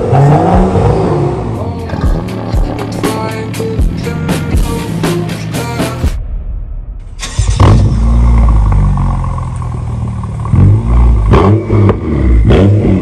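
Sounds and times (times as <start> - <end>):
engine revving: 0.0 - 6.0, 7.1 - 13.0
car engine starting and idling: 0.0 - 6.1, 7.0 - 13.0.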